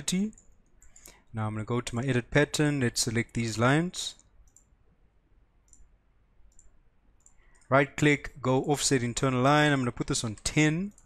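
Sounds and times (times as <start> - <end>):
faint computer mouse clicks: 0.3 - 1.2, 4.2 - 4.7, 5.7 - 5.9, 6.5 - 7.7.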